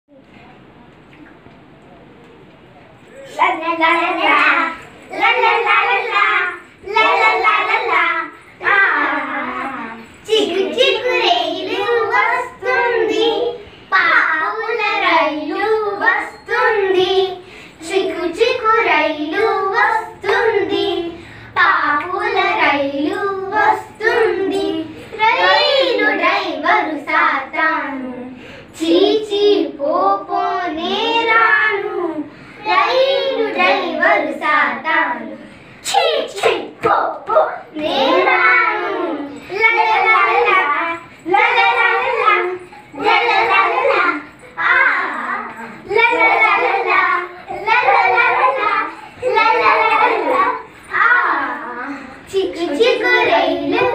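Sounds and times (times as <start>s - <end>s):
girls singing together: 3.3s - 53.9s.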